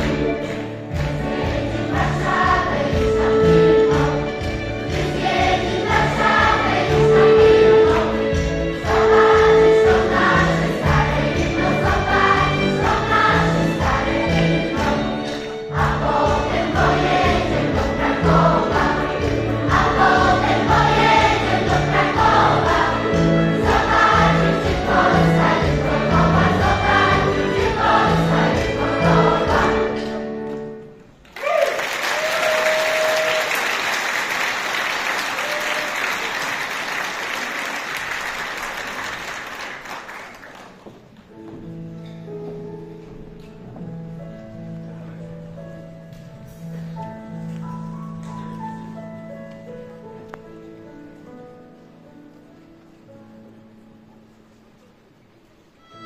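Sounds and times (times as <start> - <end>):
choir singing: 0.0 - 30.3
keyboard accompaniment: 0.0 - 31.2, 41.0 - 56.0
audience applause: 31.2 - 40.8.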